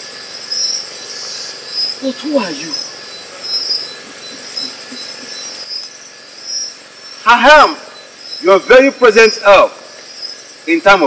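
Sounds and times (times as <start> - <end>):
crickets chirping: 0.0 - 11.0
high insect drone: 0.0 - 11.0.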